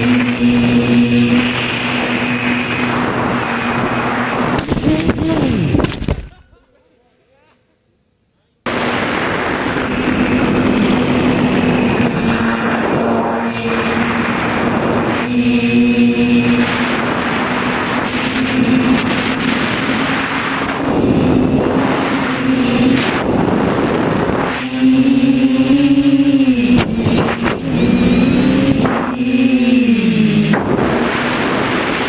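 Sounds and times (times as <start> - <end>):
rushing wind: 0.0 - 6.3, 8.7 - 32.0
quadcopter motors buzzing whine: 0.0 - 6.4, 8.7 - 32.0.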